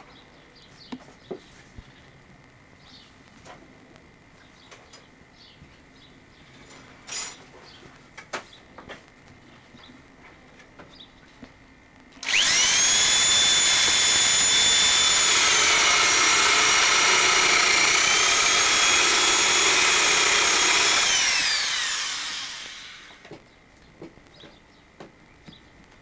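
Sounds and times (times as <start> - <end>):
electric drill boring into wood: 12.2 - 23.3.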